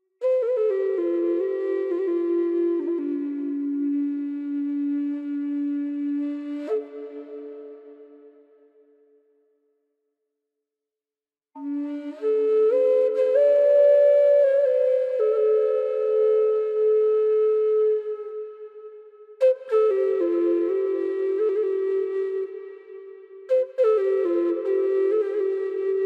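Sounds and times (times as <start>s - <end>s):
flute holding a low note: 0.2s - 8.7s, 11.6s - 26.0s.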